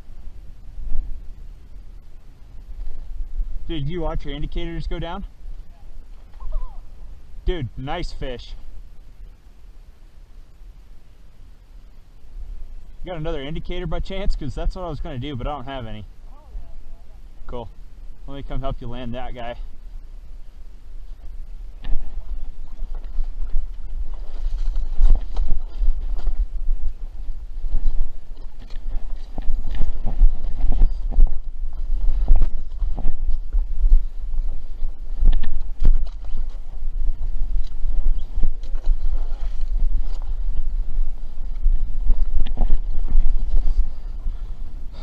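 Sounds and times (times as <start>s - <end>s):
low rumble: 0.0s - 45.0s
footsteps over rocks and snow: 21.0s - 45.0s.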